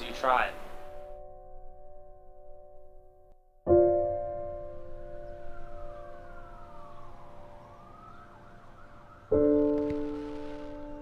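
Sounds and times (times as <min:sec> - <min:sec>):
piano chord: 0:00.0 - 0:08.0
siren wailing: 0:05.0 - 0:11.0.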